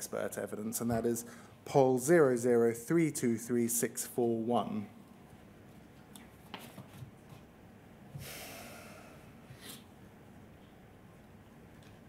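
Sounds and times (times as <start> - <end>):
man breathing out: 8.2 - 9.8
short sniff: 8.2 - 9.9.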